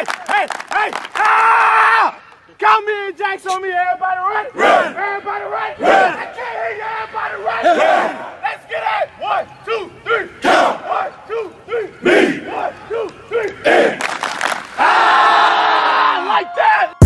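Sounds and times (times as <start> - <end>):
players chanting shouted calls: 0.3 - 14.0
long group yell: 14.8 - 17.0.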